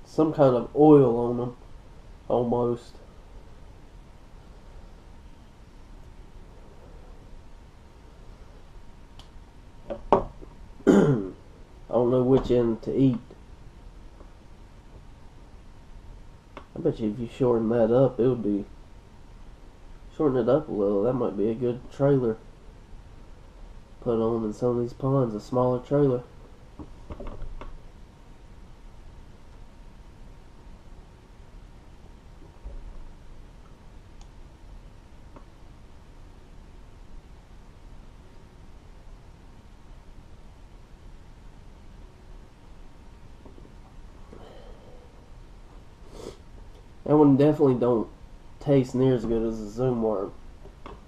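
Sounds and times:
room hiss: 0.0s - 51.0s.

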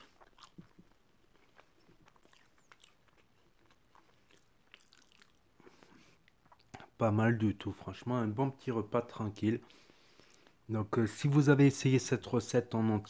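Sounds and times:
mouth clicks of chewing food: 0.0s - 7.0s.

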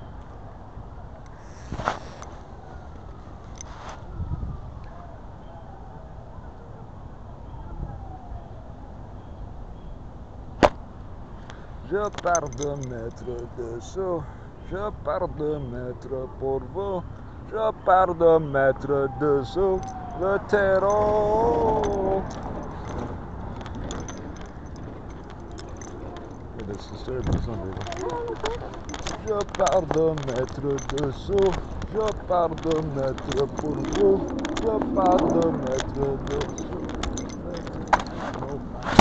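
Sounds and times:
light clicks and jingles: 2.2s - 4.1s, 11.4s - 17.7s, 18.4s - 39.0s
sharp click: 10.6s - 10.8s
soft voice: 18.8s - 23.1s.

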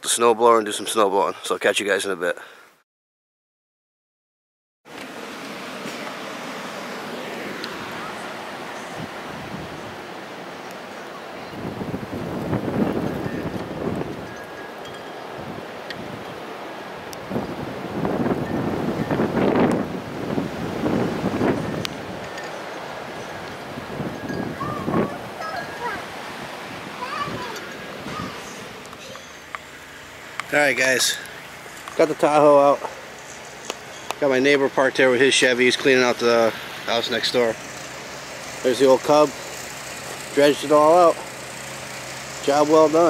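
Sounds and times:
wind buffeting microphone: 8.0s - 10.1s, 11.4s - 28.8s.

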